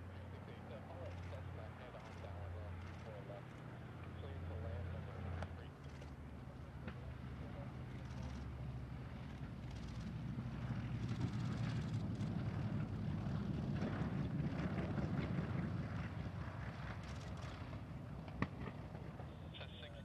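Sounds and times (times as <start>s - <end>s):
aircraft propeller engines running: 0.0s - 20.0s.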